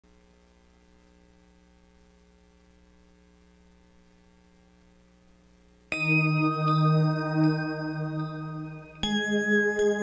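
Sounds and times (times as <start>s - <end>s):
faint electrical mains hum: 0.0s - 10.0s.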